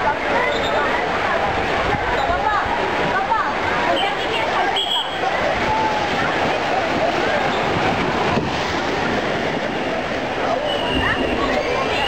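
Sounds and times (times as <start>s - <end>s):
faint voices of swimmers: 0.0s - 12.0s
splashing pool water: 0.0s - 12.0s.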